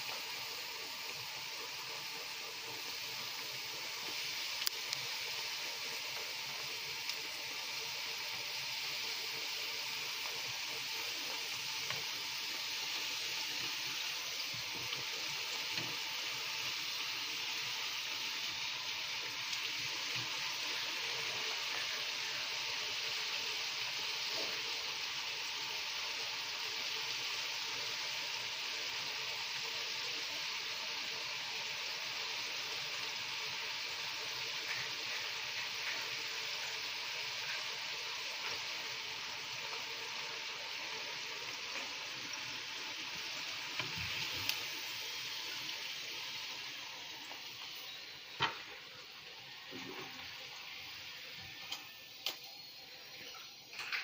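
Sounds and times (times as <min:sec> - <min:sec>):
dough sizzling in hot oil: 0:00.0 - 0:54.0.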